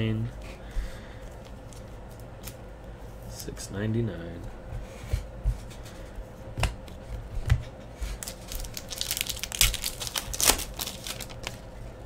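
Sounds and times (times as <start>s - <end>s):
cards rustling and clicking: 8.1s - 11.6s.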